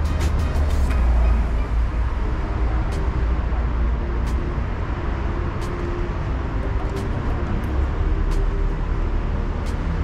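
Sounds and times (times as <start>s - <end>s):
music with ticking beat: 0.0s - 10.0s
road traffic rumble: 0.0s - 10.0s.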